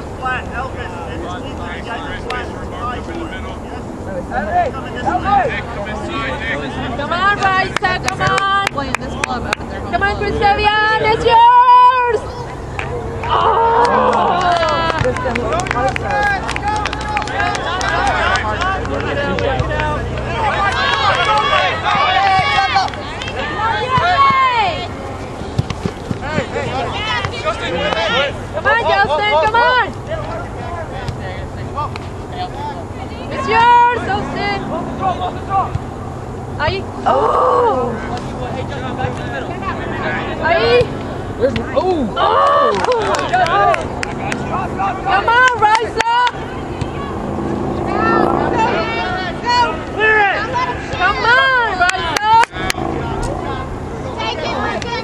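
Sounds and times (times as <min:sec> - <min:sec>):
steady low hum: 0:00.0 - 0:55.0
spectators shouting: 0:10.0 - 0:31.0, 0:32.5 - 0:55.0.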